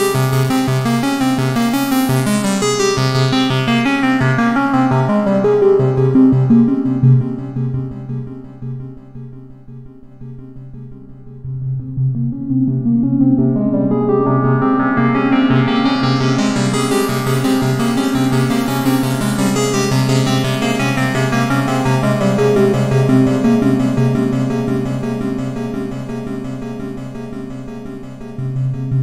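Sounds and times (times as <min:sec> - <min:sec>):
synthesizer saw-wave sequence: 0:01.5 - 0:09.0, 0:11.0 - 0:29.0.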